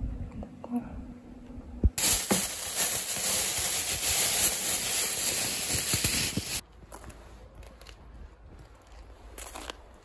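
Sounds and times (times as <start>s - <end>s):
plastic bag rustling: 2.0s - 6.6s.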